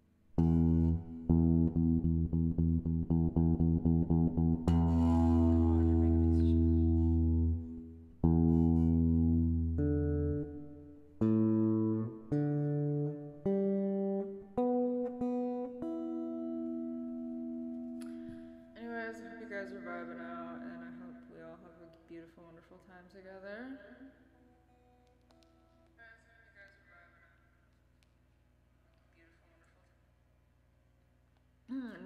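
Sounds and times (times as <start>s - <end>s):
guitar playing: 0.3s - 21.9s.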